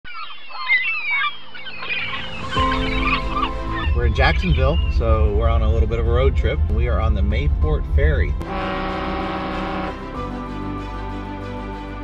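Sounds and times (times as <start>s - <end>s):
background music: 1.9s - 12.0s.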